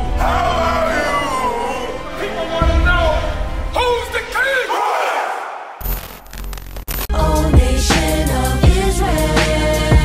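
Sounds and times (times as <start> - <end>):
men shouting together: 0.0 - 3.3, 4.3 - 5.8
background music: 0.0 - 5.7, 7.1 - 10.0
music with a beat: 7.1 - 10.0.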